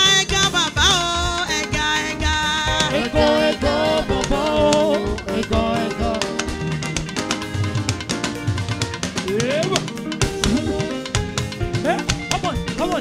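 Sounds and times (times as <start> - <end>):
woman singing into microphone: 0.0 - 6.6
drum kit steady beat: 0.0 - 13.0
rising sliding note: 10.3 - 11.1.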